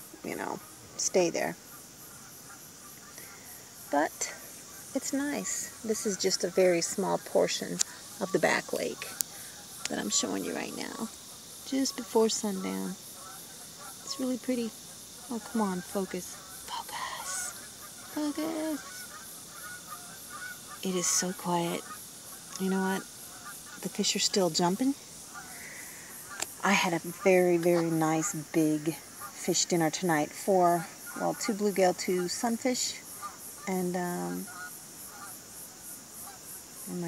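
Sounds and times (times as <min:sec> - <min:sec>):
distant birds calling: 0:00.0 - 0:37.0
distant geese honking: 0:00.0 - 0:37.0
high insect chirp: 0:00.0 - 0:37.0
woman's voice: 0:00.1 - 0:01.6, 0:03.9 - 0:04.4, 0:05.0 - 0:09.2, 0:09.9 - 0:11.1, 0:11.7 - 0:13.0, 0:14.1 - 0:14.7, 0:15.3 - 0:17.6, 0:18.2 - 0:18.9, 0:20.8 - 0:21.8, 0:22.6 - 0:23.0, 0:23.8 - 0:25.0, 0:26.5 - 0:33.0, 0:33.7 - 0:34.5.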